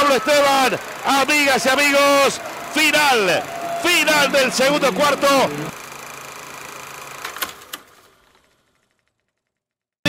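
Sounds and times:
low hum: 0:02.2 - 0:06.6.

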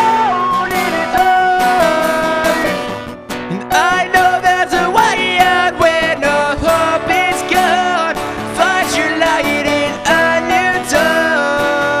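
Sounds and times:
acoustic guitar strumming: 0:00.0 - 0:12.0
man singing: 0:00.0 - 0:12.0.

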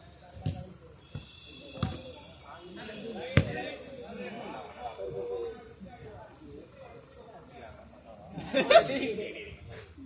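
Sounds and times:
football being kicked: 0:00.4 - 0:02.1, 0:03.3 - 0:03.7.

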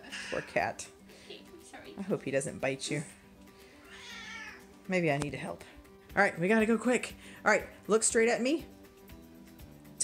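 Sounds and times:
cat meowing: 0:03.9 - 0:04.7.

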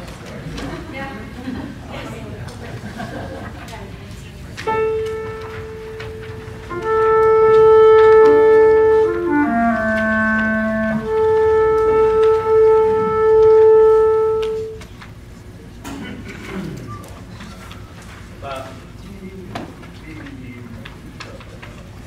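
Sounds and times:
flutes playing held notes: 0:04.7 - 0:14.8.

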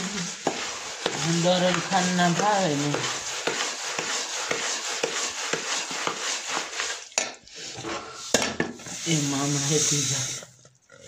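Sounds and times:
metal spatula scraping steel pot: 0:00.0 - 0:10.6.

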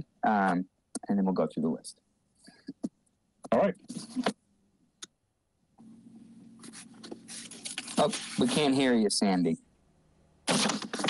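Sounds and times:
low steady hum: 0:00.0 - 0:10.5.

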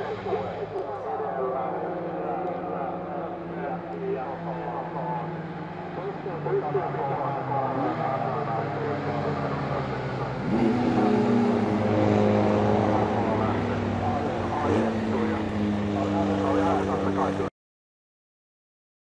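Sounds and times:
race car engines revving past: 0:00.0 - 0:17.5.

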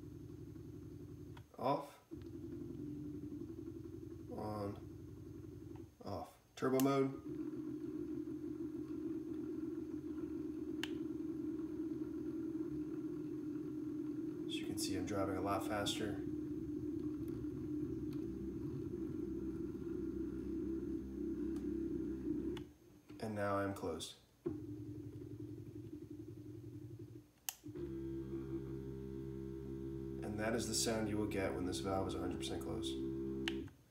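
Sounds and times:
stepper motor hum: 0:00.0 - 0:01.4, 0:02.1 - 0:06.0, 0:06.8 - 0:22.7, 0:24.5 - 0:33.7.

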